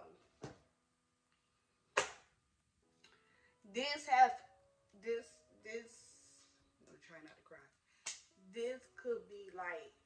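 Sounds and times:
sharp hand clap: 0:01.9 - 0:02.3.

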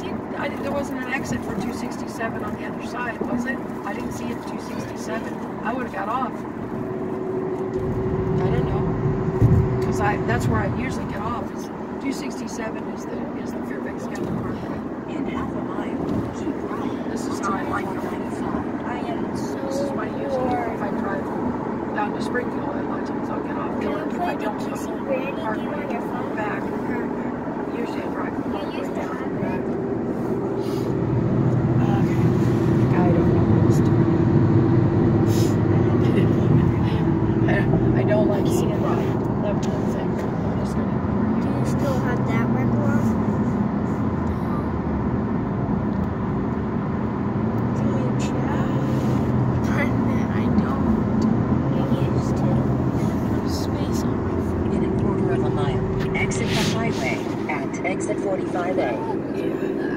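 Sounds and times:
car cabin road and engine noise: 0:00.0 - 0:59.9
quiet voices: 0:09.8 - 0:34.2, 0:47.6 - 0:59.9.

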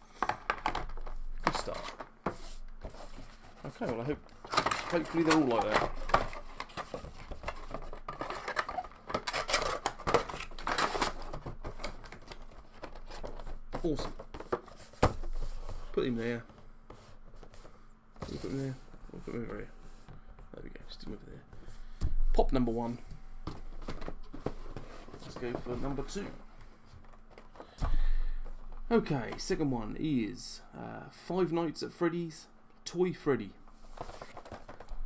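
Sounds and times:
plastic insert rustling and crinkling: 0:00.1 - 0:21.0, 0:22.4 - 0:29.7, 0:33.7 - 0:35.0.

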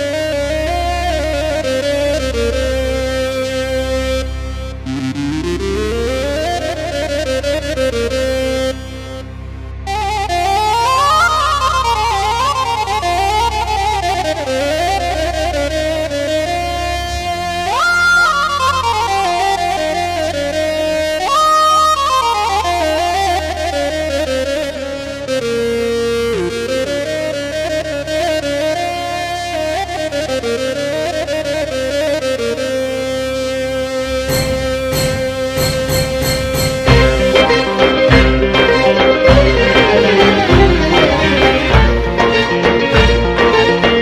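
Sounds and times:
bouzouki melody: 0:00.0 - 0:44.0
keyboards accompaniment: 0:00.0 - 0:44.0.

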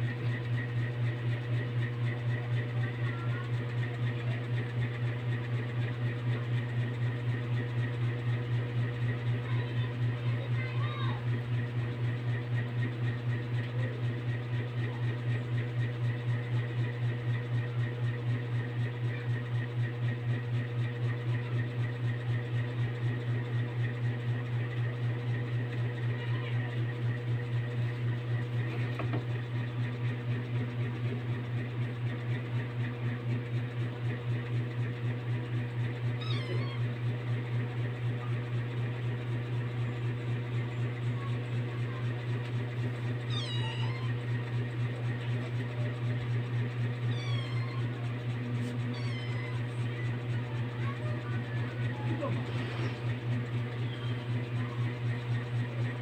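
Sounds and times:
cat meowing: 0:36.2 - 0:37.0, 0:43.2 - 0:44.2, 0:47.0 - 0:48.0, 0:48.8 - 0:49.7
low hum: 0:50.8 - 0:54.8.

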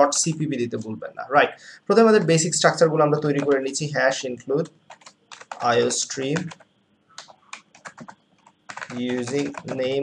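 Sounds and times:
computer keyboard keys clicking: 0:03.3 - 0:03.6, 0:04.9 - 0:10.0.

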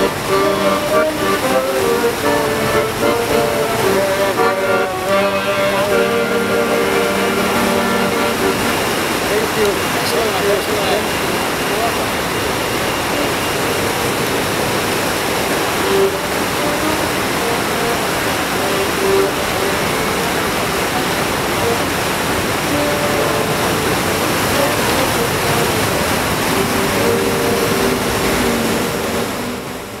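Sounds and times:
faint accordion melody: 0:00.0 - 0:09.7, 0:12.9 - 0:14.1, 0:15.5 - 0:30.0
steady rushing noise: 0:00.0 - 0:30.0.

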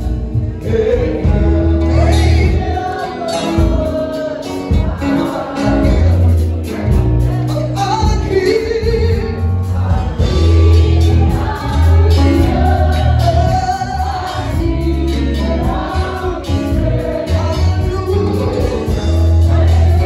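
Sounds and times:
strong bass: 0:00.0 - 0:03.0, 0:04.7 - 0:20.0
singers with band: 0:00.0 - 0:20.0.

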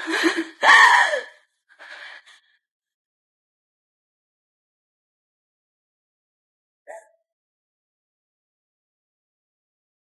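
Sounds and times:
woman breathing: 0:00.0 - 0:02.6.

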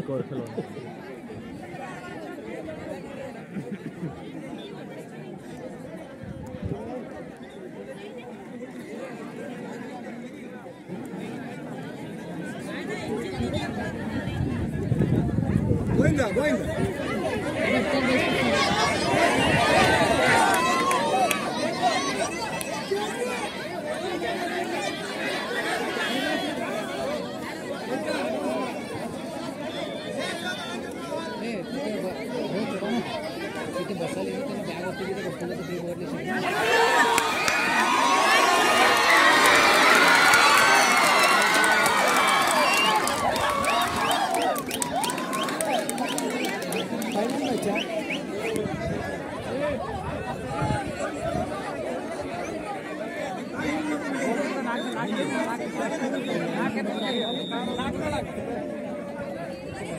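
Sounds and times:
crowd chattering and calling out: 0:00.0 - 0:59.9
crowd shouting and cheering: 0:15.5 - 0:31.4, 0:36.1 - 0:59.9.

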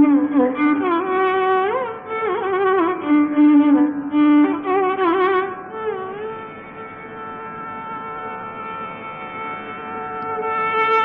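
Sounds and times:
buzzy drone: 0:00.0 - 0:11.0.

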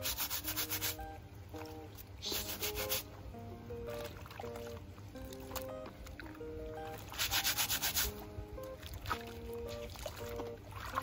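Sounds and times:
brush scrubbing plastic basin: 0:00.0 - 0:01.0, 0:02.2 - 0:03.1, 0:07.1 - 0:08.2
background music: 0:00.0 - 0:11.0.

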